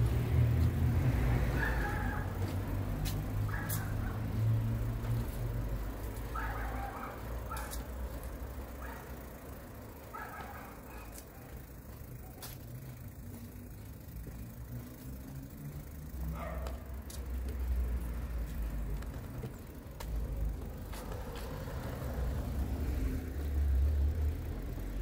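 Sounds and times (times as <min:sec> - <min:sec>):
distant traffic rumble: 0:00.0 - 0:25.0.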